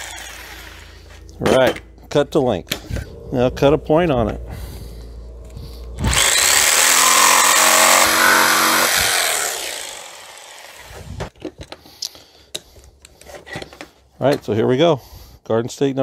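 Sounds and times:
jigsaw cutting wood: 0.0 - 0.8, 6.0 - 11.3.

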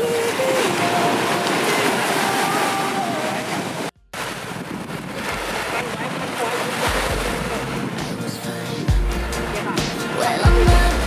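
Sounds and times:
wind on microphone: 0.0 - 10.9
small waves washing onto sand: 0.0 - 11.0.

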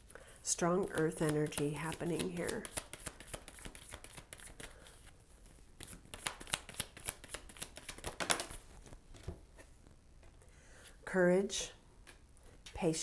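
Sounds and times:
cards being shuffled: 0.8 - 9.4.

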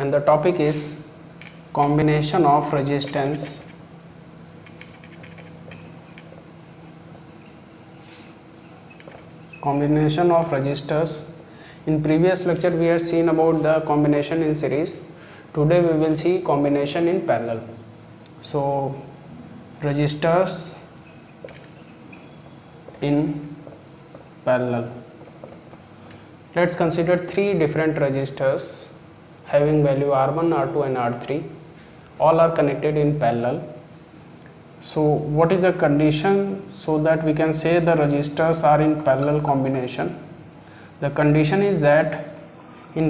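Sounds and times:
steady high-pitched whine: 0.0 - 43.0.

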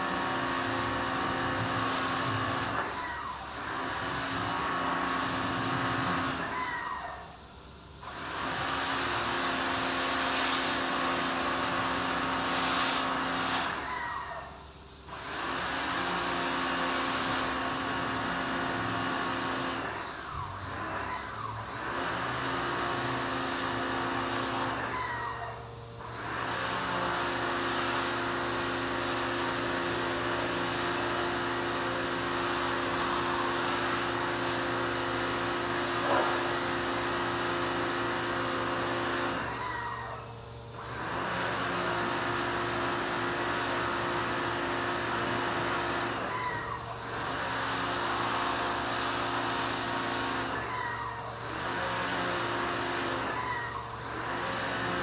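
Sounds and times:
pressure washer hiss and hum: 0.0 - 55.0.

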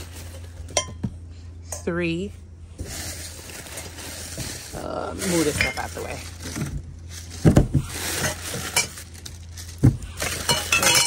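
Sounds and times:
packing paper rustling: 0.0 - 0.7, 2.8 - 11.0
glasses and mugs clinking: 10.3 - 11.0.

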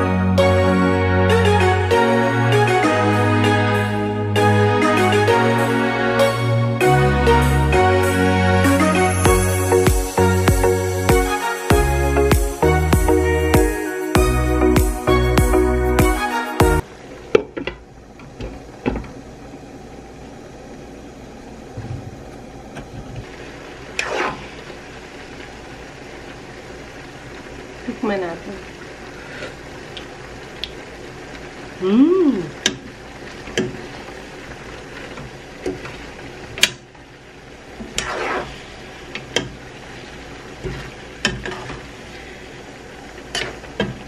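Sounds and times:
food bubbling hiss in wok: 16.8 - 44.0.

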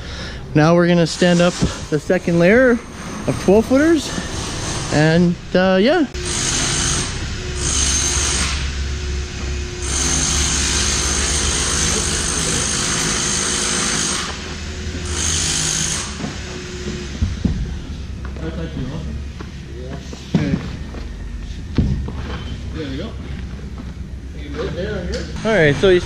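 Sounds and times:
power tool whining: 1.1 - 19.0.

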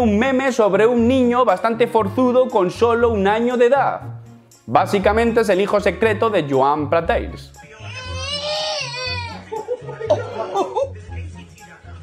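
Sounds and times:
baby crying: 7.8 - 10.9.

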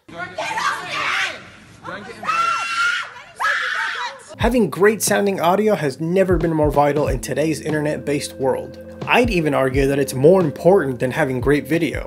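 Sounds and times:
women screaming: 0.2 - 4.4.

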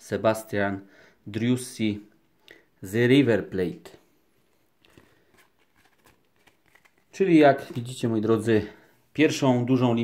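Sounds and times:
trading cards being handled: 4.4 - 8.2.

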